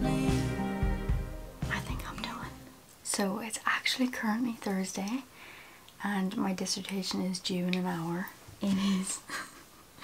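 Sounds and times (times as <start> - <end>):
background music: 0.0 - 2.8
woman whispering softly: 1.7 - 2.5.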